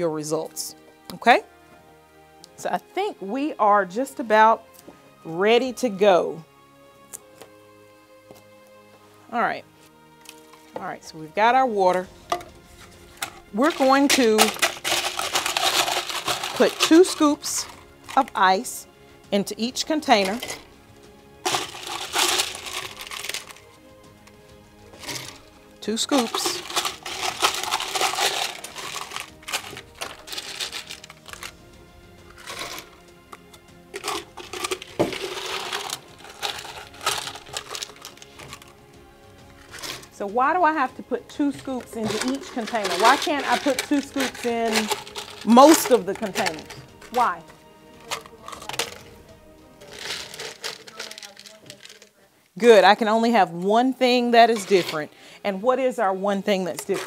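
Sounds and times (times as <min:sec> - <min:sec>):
ice cubes clattering against plastic: 0:13.2 - 0:18.3, 0:21.4 - 0:23.6, 0:25.0 - 0:25.4, 0:26.0 - 0:31.5, 0:32.3 - 0:33.0, 0:33.9 - 0:38.7, 0:39.6 - 0:40.1, 0:41.8 - 0:47.3, 0:48.0 - 0:49.1, 0:49.8 - 0:52.1.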